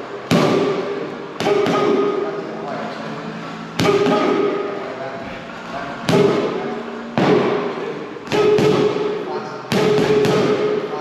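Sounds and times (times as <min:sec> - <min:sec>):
boxing glove smacking stick: 0:08.3 - 0:09.1.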